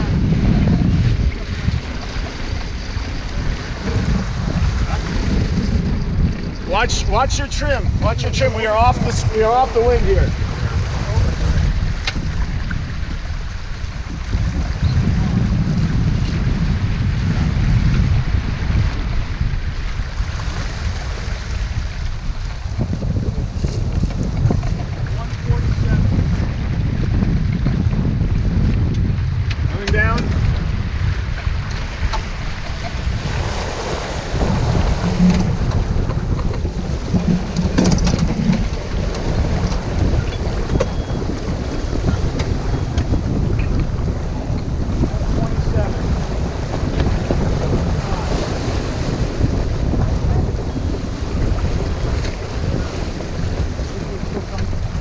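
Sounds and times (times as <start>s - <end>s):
water rushing along hull: 0.0s - 55.0s
wind buffeting microphone: 0.0s - 55.0s.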